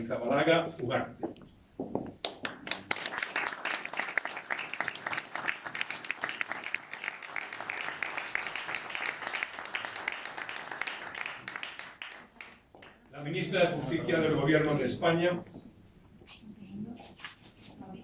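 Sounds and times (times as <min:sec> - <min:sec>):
people applauding: 0:02.2 - 0:13.1.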